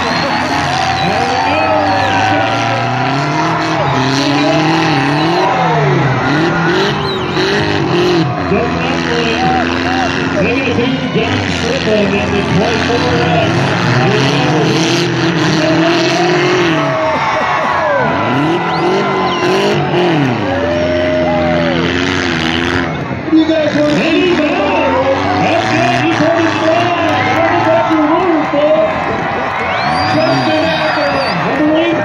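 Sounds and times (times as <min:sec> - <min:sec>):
car engines revving: 0:00.0 - 0:32.0
crowd chatter: 0:00.0 - 0:32.0.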